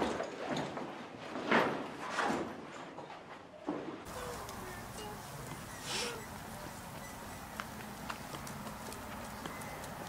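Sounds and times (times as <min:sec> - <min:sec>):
footsteps on paved path: 0:04.1 - 0:10.0.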